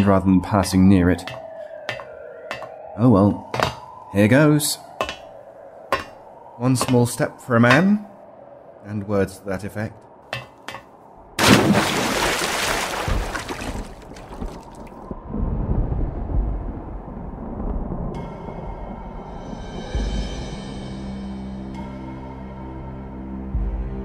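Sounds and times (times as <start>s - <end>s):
body splashing into water: 11.4s - 15.0s
low underwater rumble: 12.1s - 18.3s
ominous music: 15.3s - 24.0s.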